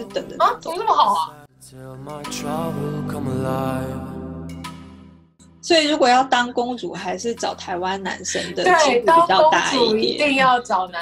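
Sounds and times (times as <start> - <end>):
chant-like sung tone: 1.3 - 4.3.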